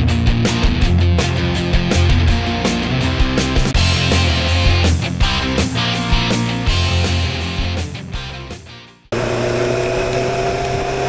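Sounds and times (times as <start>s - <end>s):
motorcycle engine cruising: 9.1s - 11.0s
wind and road noise: 9.2s - 11.0s.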